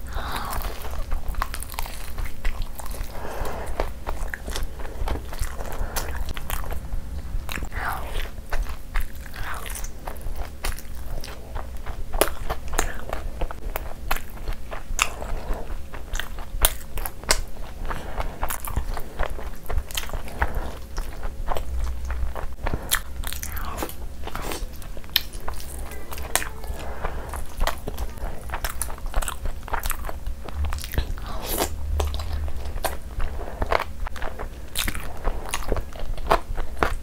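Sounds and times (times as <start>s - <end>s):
wet chewing: 0.0s - 37.0s.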